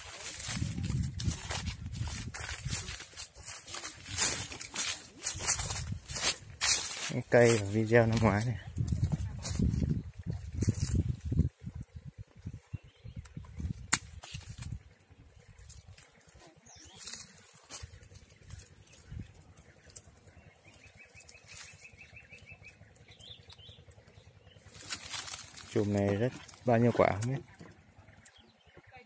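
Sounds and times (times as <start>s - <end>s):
footsteps in dry leaves: 0.0s - 11.5s, 14.2s - 22.9s, 24.6s - 27.3s
low rumble: 0.0s - 16.0s.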